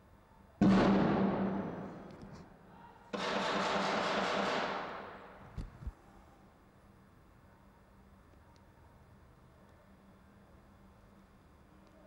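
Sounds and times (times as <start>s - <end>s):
rapid gunfire: 0.6s - 2.0s, 3.2s - 5.3s
loud echoing bang: 0.6s - 2.2s.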